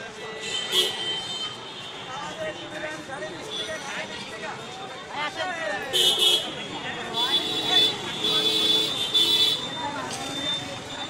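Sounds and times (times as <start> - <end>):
traffic: 0.0 - 11.0
vehicle horns: 0.4 - 2.6, 5.9 - 9.8
people talking: 2.0 - 11.0.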